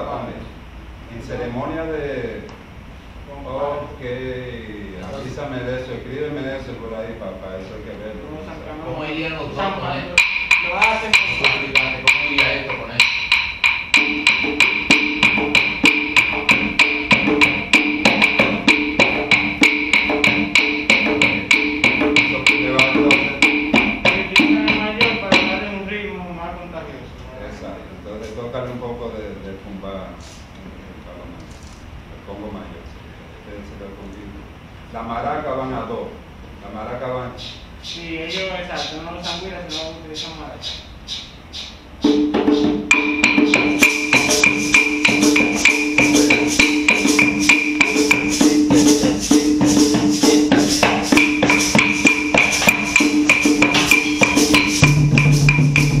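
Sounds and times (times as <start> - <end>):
person speaking: 3.2 - 13.2, 35.6 - 40.9
hand drum rhythm: 10.0 - 25.7, 41.6 - 56.0.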